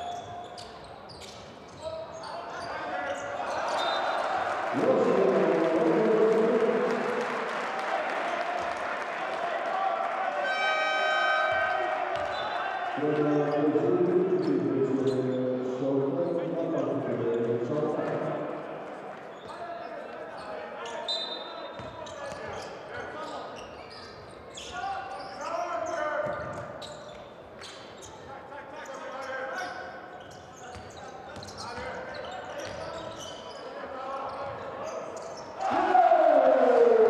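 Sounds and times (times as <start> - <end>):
sneakers squeaking on court: 0.0 - 4.1, 11.6 - 12.6, 19.3 - 28.3, 29.2 - 35.6
crowd cheering: 3.4 - 13.5, 35.6 - 37.0
people shouting: 35.6 - 37.0.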